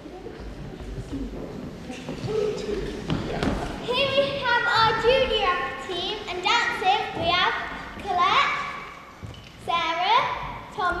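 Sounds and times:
children calling out echoing: 3.8s - 9.0s.

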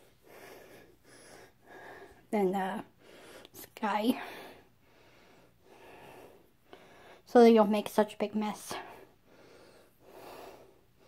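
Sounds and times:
soft breathing: 0.0s - 7.4s, 8.6s - 11.0s.

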